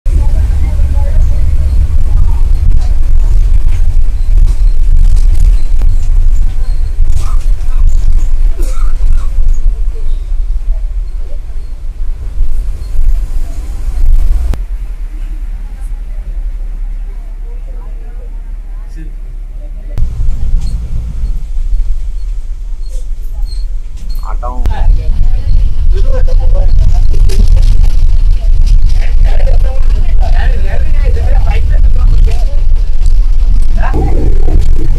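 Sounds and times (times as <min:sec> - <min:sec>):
bus engine and road noise: 0:00.0 - 0:34.9.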